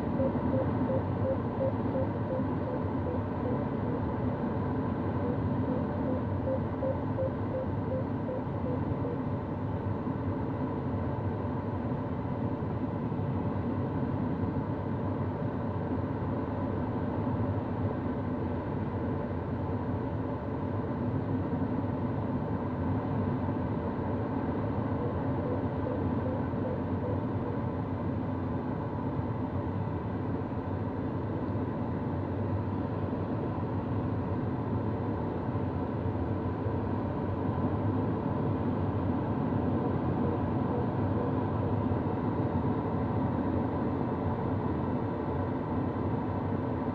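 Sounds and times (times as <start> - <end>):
airflow and cockpit noise: 0.0 - 46.9.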